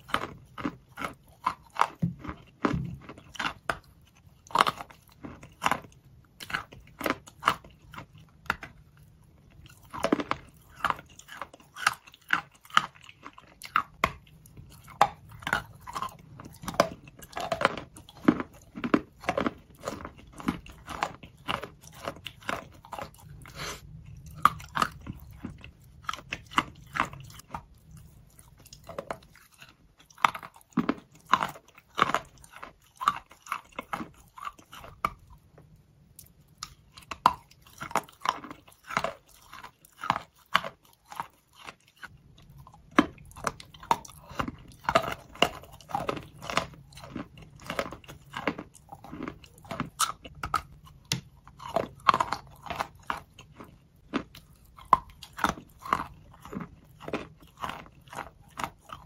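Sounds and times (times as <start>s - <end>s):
chewing crunchy chalk: 0.0s - 59.0s.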